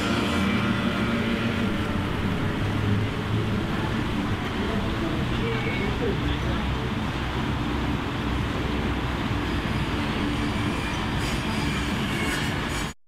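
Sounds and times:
train running on rails: 0.0s - 13.0s.

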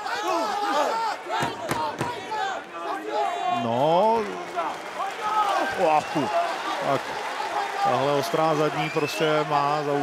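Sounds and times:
faint arena crowd noise: 0.0s - 10.0s.

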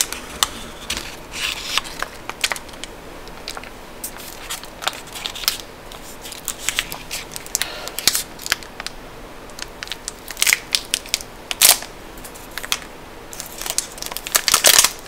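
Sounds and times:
wrappers crinkling and tearing: 0.0s - 8.9s, 9.6s - 15.0s.

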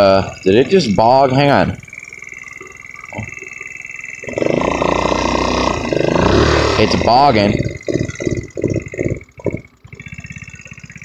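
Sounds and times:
scooter engine sputtering and idling: 0.0s - 11.0s.

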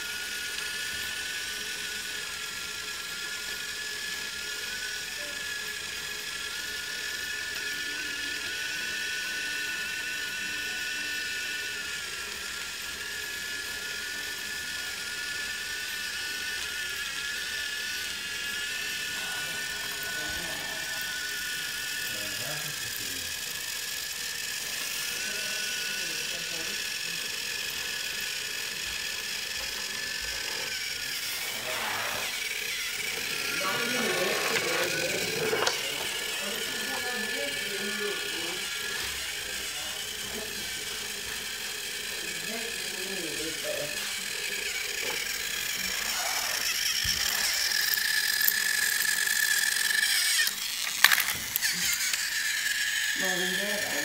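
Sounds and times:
toy train motor whining: 0.0s - 54.0s.

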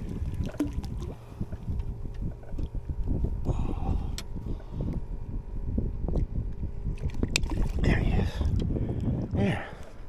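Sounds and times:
water lapping against boat hull: 0.0s - 10.0s
wind rumbling on microphone: 0.0s - 10.0s.

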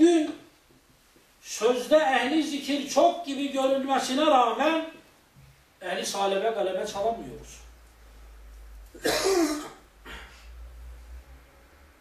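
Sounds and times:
man coughing: 9.0s - 10.4s.

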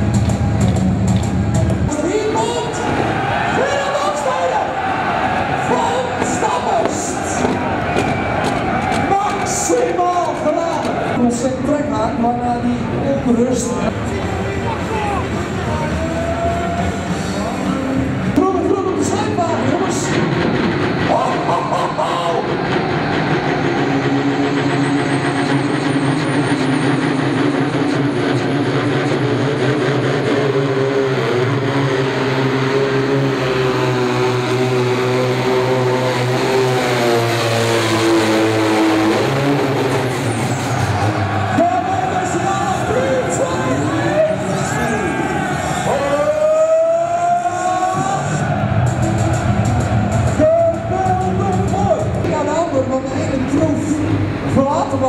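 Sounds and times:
diesel tractor engine full throttle: 0.0s - 55.0s
high turbo whine: 0.0s - 55.0s.

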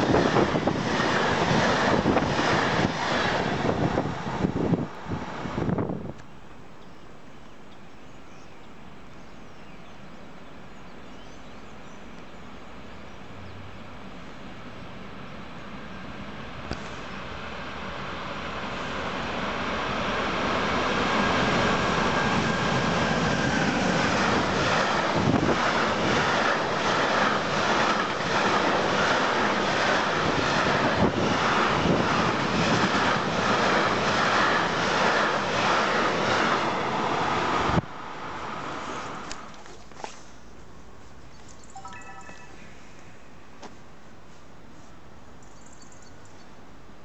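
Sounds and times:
freight train passing: 0.0s - 8.0s, 8.7s - 39.6s.

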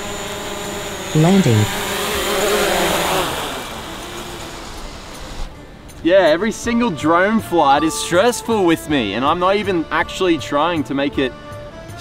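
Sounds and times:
drone propellers whirring: 0.0s - 5.6s.

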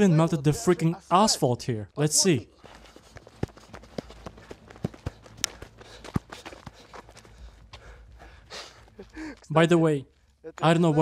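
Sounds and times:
handheld camera rumble: 2.6s - 9.5s
footsteps on gritty asphalt: 2.6s - 9.6s.

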